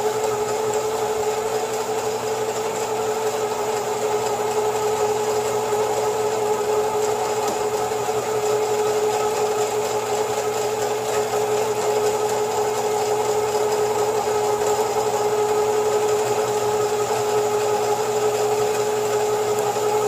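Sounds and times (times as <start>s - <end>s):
line-spooling machine humming: 0.0s - 20.0s.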